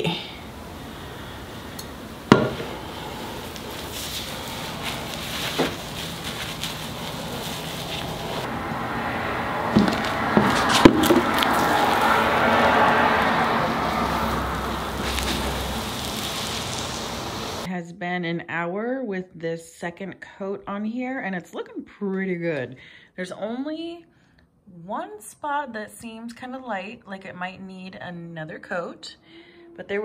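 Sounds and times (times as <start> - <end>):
sharp knocks: 2.3 - 2.8, 9.7 - 11.3
rag swishing on concrete: 2.3 - 8.5, 9.7 - 17.6.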